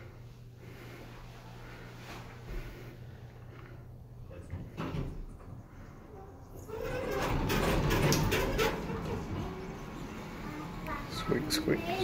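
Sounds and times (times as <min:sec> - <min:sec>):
elevator doors sliding: 0:06.5 - 0:11.7
clicks and rattles: 0:06.8 - 0:09.5.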